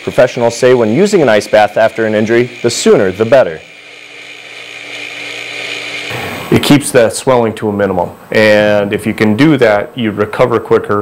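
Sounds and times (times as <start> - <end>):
whirring machine hum: 0.0 - 8.9.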